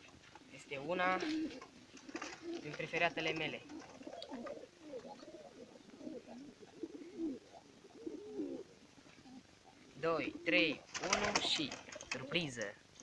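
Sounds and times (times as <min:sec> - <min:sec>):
pigeons cooing: 0:00.0 - 0:12.7.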